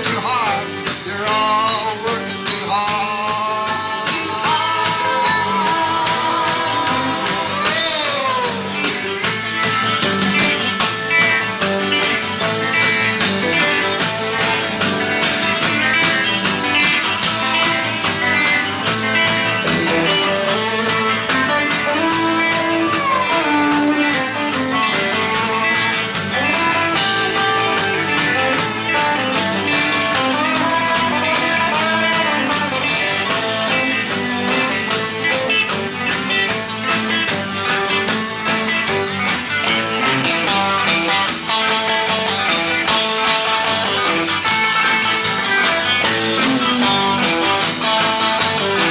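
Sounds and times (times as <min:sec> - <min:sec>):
rock band guitar instrumental: 0:00.0 - 0:48.9.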